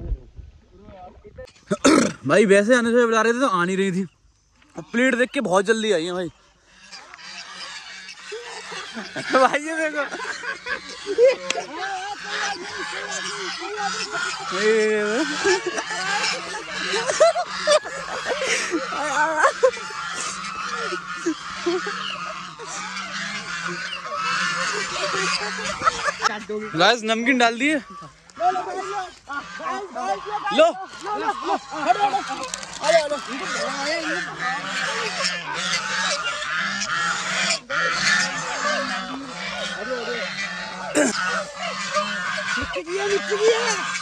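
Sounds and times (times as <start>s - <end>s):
geese honking: 1.4s - 44.0s.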